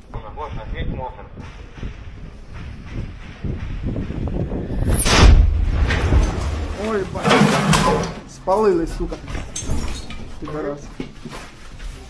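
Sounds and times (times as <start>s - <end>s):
loud explosion: 1.4s - 8.0s
rustling and handling noise: 6.0s - 12.0s.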